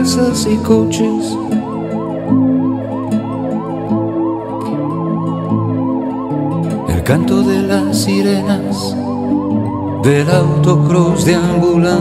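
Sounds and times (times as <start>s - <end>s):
person singing: 0.0s - 1.6s, 6.8s - 9.2s, 10.0s - 12.0s
siren yelp and wail in a song: 0.0s - 12.0s
sustained instrumental chords: 0.3s - 12.0s.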